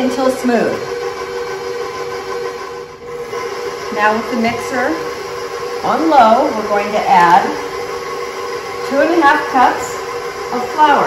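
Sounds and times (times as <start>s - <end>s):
stand mixer motor humming: 0.0s - 11.0s.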